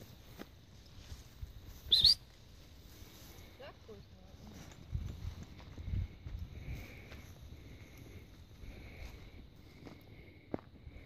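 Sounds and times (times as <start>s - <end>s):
footsteps through dry grass: 0.0s - 11.0s
high rising chirp: 1.8s - 2.2s.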